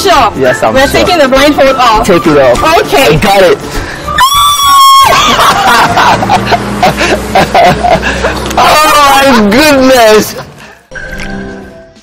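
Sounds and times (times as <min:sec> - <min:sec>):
high-pitched squeal: 0:04.1 - 0:05.3
people laughing: 0:04.8 - 0:08.6.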